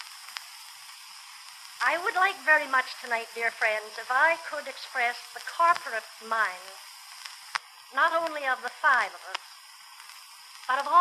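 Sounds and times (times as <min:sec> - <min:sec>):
recording hiss and crackle: 0:00.0 - 0:11.0
woman speaking: 0:01.8 - 0:06.8, 0:07.9 - 0:09.5, 0:10.7 - 0:11.0.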